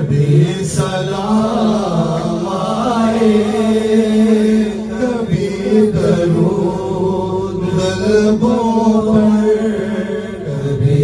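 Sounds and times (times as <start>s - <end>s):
men chanting into microphones: 0.0s - 11.0s.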